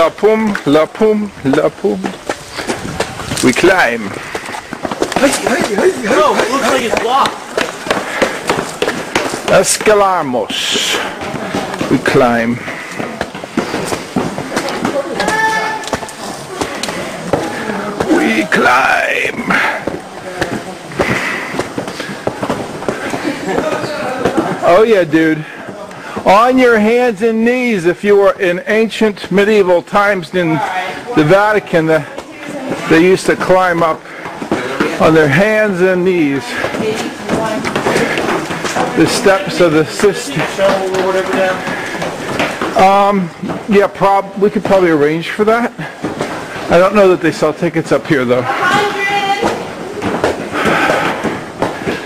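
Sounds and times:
footsteps on stone steps: 0.0 - 52.0
people's voices: 0.0 - 52.0.

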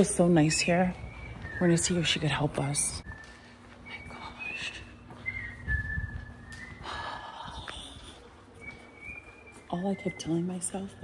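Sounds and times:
person whistling: 3.1 - 7.4.

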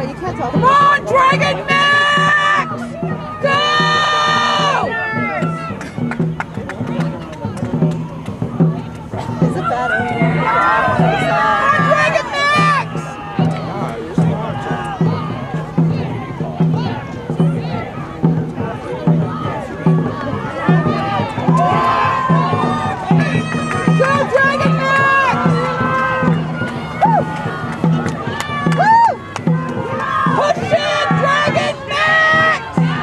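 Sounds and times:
drum beating steady rhythm: 0.0 - 33.0
people shouting and cheering: 0.0 - 33.0.

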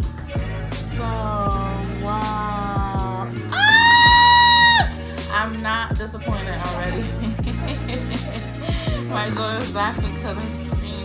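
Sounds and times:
background music: 0.0 - 11.0
woman squealing: 3.5 - 5.0.

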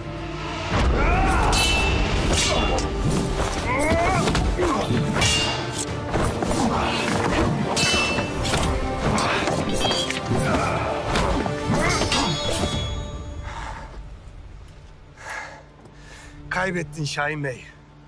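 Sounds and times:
dramatic film music: 0.0 - 18.0
steel blades clashing: 1.2 - 3.0, 4.7 - 6.4, 7.5 - 10.7, 11.6 - 13.1
men grunting: 3.6 - 5.2, 9.0 - 12.7.

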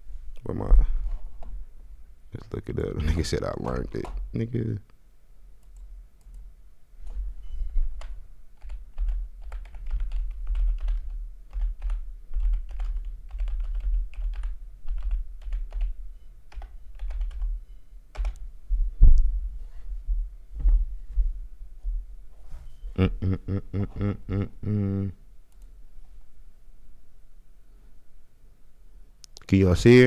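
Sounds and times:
typing on computer keyboard: 7.8 - 18.4.

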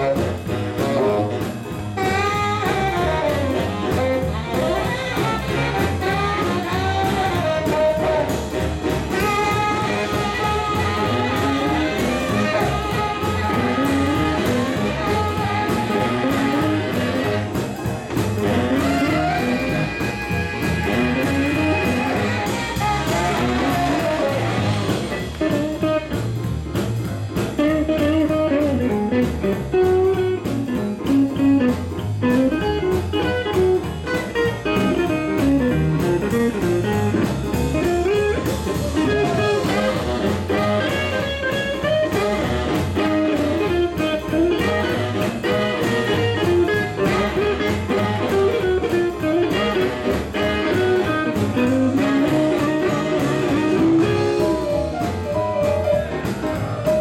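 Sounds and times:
electric guitar lead: 0.0 - 57.0
swing band playing: 0.0 - 57.0.

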